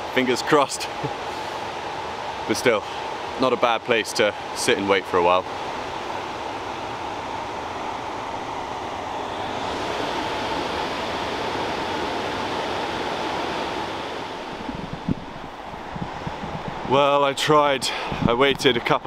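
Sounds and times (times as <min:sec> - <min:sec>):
water rushing over falls: 0:00.0 - 0:19.0.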